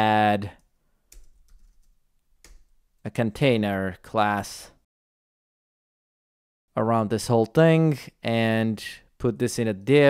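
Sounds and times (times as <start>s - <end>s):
typing on computer keyboard: 1.1s - 2.8s.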